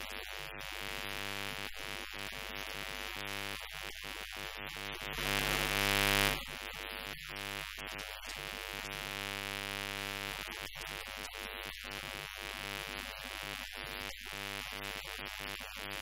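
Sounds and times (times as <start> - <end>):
steady buzzing hum: 0.0 - 13.1.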